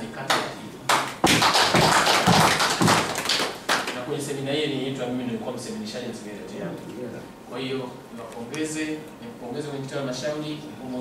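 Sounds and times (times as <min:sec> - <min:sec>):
people clapping: 0:00.3 - 0:04.1.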